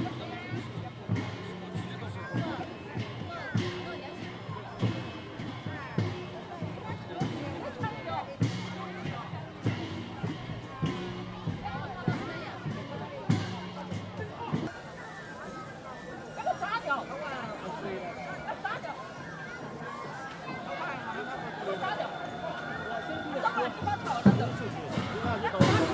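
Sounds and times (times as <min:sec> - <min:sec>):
parade drum beat: 0:00.0 - 0:14.7, 0:20.6 - 0:25.9
spectators chattering: 0:00.0 - 0:25.9.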